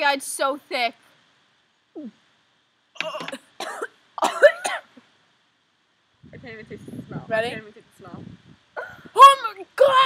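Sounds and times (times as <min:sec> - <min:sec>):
girl gagging and coughing: 0:03.0 - 0:04.9.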